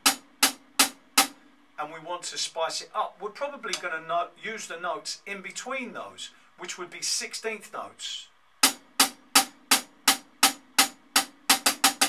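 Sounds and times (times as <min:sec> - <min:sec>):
drumstick tapping: 0:00.0 - 0:01.4, 0:08.6 - 0:12.0.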